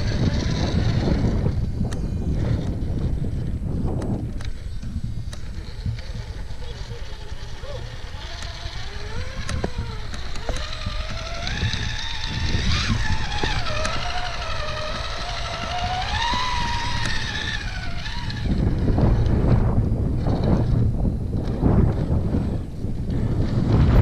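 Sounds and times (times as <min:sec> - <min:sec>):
rc car motor whining: 0:00.0 - 0:24.0
wind buffeting microphone: 0:00.0 - 0:24.0
sharp clicks: 0:09.2 - 0:18.6.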